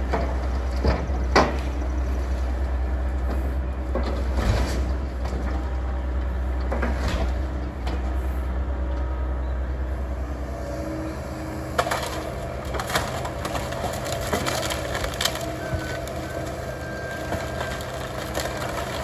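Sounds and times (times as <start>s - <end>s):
excavator diesel engine running: 0.0s - 19.0s
debris crashing into metal dumpster: 11.8s - 19.0s.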